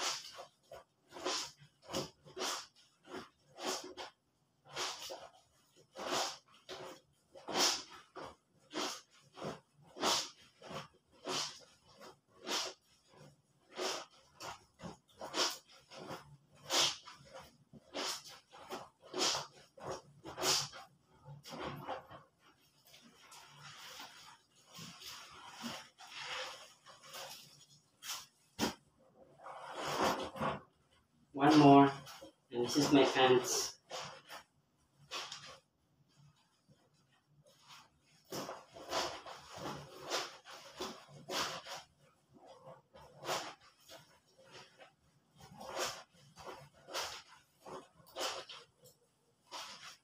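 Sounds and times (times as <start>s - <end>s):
wet clothes scrubbed by hand: 0.0s - 30.7s, 31.4s - 50.0s.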